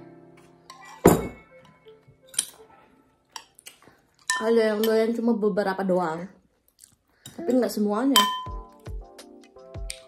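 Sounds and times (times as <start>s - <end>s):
metal spoon clinking ceramic bowl: 4.2s - 5.0s, 8.2s - 8.6s
background music with steady beat: 7.4s - 10.0s.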